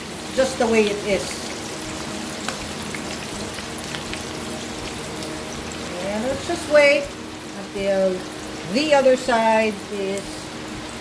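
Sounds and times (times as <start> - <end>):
meat sizzling in oil: 0.0 - 11.0.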